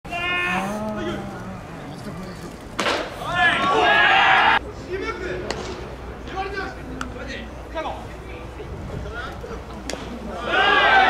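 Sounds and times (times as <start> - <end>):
ballplayers shouting calls: 0.1 - 1.4, 2.9 - 5.6, 10.3 - 11.0.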